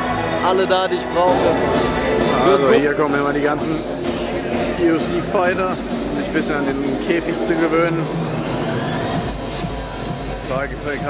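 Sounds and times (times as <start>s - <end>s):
faint music: 0.0s - 11.0s.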